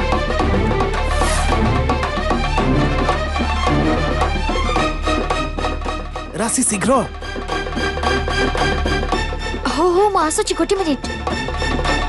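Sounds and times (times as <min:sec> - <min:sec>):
dramatic rhythmic music: 0:00.0 - 0:12.0.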